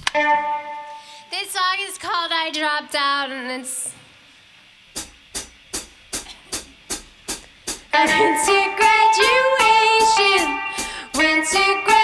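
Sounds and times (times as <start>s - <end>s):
band playing a song: 8.0s - 12.0s.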